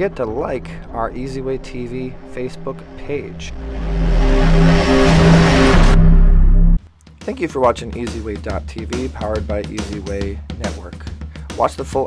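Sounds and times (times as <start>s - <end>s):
rising rush of noise: 0.0s - 6.8s
closing music with low notes: 0.0s - 12.0s.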